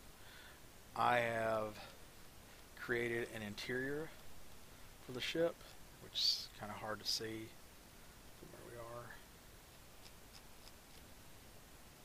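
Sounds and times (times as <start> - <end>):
computer mouse clicks: 10.0 - 11.1.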